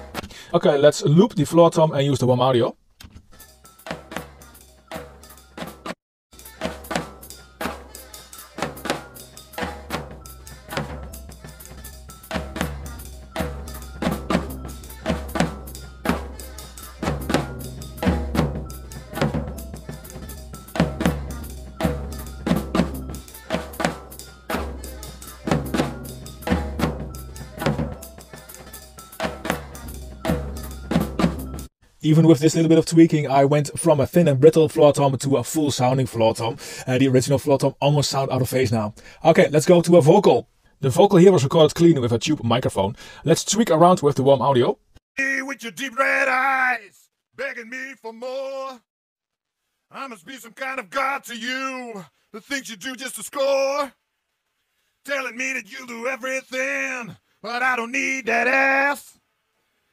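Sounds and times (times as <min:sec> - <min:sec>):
floor tom drum hits: 0:17.0 - 0:19.7, 0:25.5 - 0:28.1.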